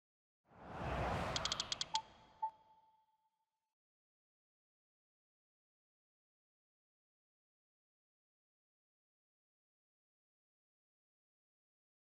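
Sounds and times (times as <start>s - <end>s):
whoosh: 0.5s - 2.4s
small clicks: 1.3s - 2.0s.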